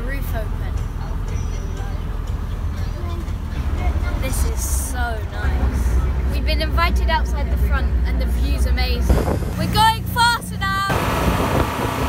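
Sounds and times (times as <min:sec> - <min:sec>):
speedboat low rumble: 0:00.0 - 0:12.0.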